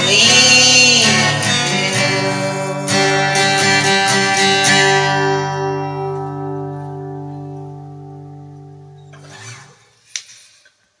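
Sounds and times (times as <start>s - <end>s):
acoustic guitar chord: 0.0s - 9.7s.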